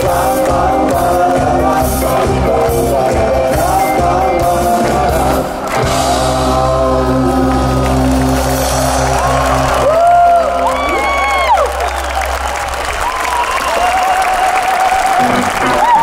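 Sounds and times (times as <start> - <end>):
rock band playing: 0.0 - 13.2, 15.0 - 16.0
crowd cheering and applauding: 0.0 - 16.0.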